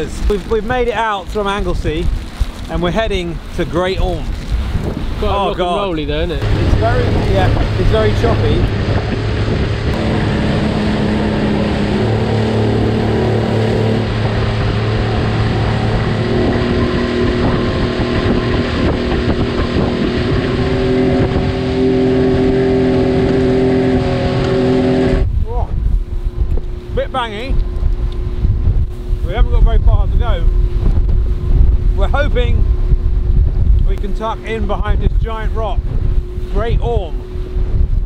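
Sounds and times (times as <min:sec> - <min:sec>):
hull rushing through choppy water: 0:00.0 - 0:38.0
wind: 0:00.0 - 0:38.0
outboard motor running hard: 0:03.4 - 0:38.0.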